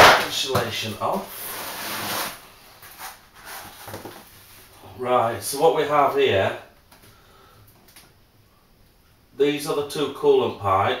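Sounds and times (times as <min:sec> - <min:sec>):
faint rubbing and handling: 0:01.0 - 0:04.8
foam insulation rustling scrape: 0:01.2 - 0:04.7.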